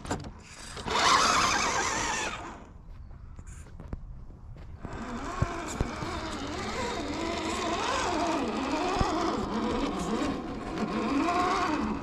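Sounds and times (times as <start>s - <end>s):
electric motor whining: 0.5s - 2.8s, 4.8s - 12.0s.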